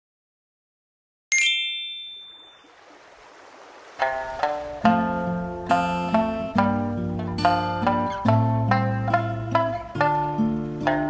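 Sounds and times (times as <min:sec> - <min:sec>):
bright chime: 0:01.3 - 0:02.7
plucked-string background music: 0:04.0 - 0:11.0.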